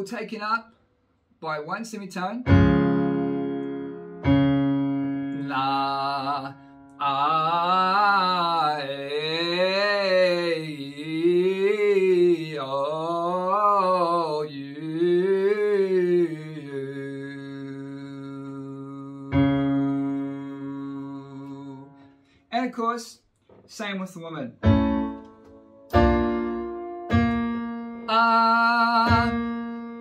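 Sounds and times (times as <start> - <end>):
electronic keyboard chord: 2.5 - 7.1, 19.3 - 22.0, 24.6 - 30.0
man singing a scale: 5.4 - 22.0, 28.1 - 29.5.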